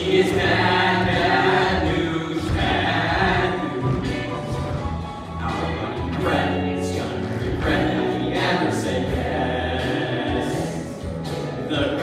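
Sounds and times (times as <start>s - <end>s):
boys singing in chorus: 0.0s - 4.2s, 6.1s - 10.9s
musical accompaniment: 0.0s - 12.0s.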